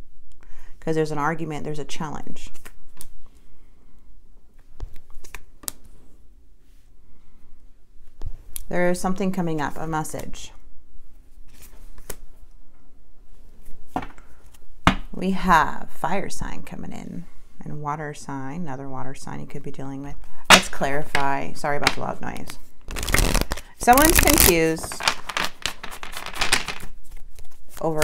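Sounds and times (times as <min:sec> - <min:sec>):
cards being shuffled: 0:04.6 - 0:06.0, 0:21.8 - 0:28.0.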